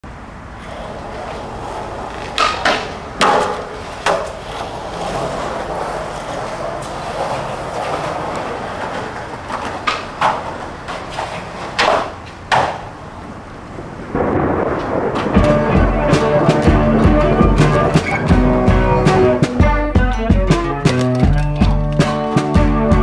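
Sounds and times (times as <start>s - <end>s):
skateboard wheels rolling: 0.1s - 23.0s
skateboard clacks: 0.5s - 13.3s, 14.8s - 23.0s.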